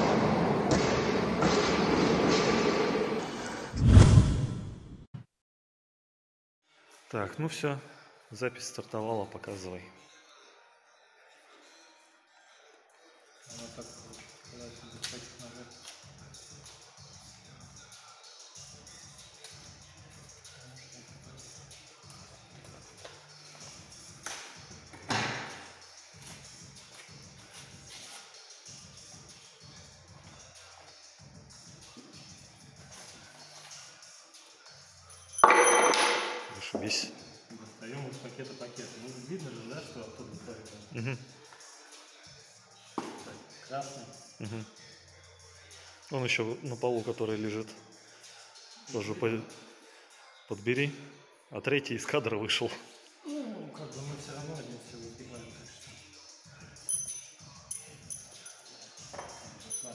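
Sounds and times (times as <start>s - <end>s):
loud deep thud: 3.8s - 4.8s
faint background music: 6.6s - 59.9s.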